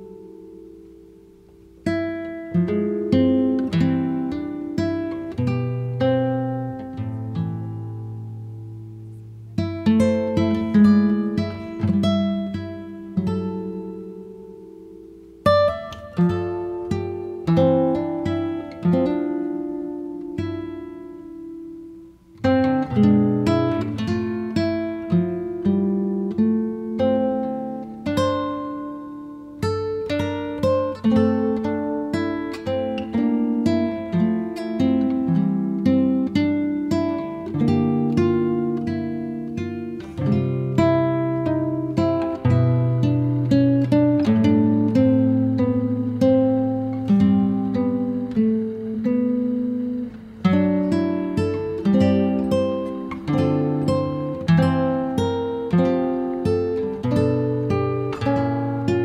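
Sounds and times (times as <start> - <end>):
acoustic guitar plucked and strummed: 0.0 - 59.0.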